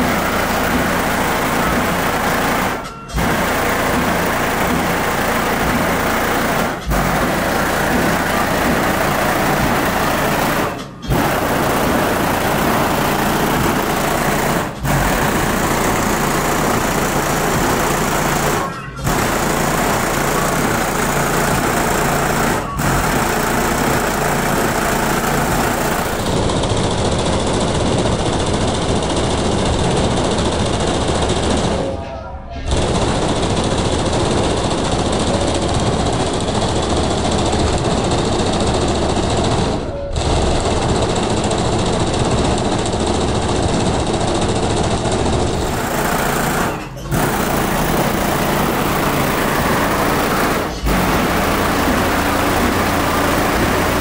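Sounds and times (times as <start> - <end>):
loud bass-heavy music: 0.0 - 26.9, 45.5 - 54.0.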